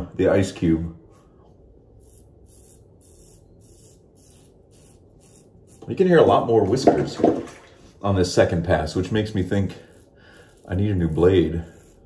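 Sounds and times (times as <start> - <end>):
razor scraping through stubble: 1.8 - 6.7, 8.6 - 12.0.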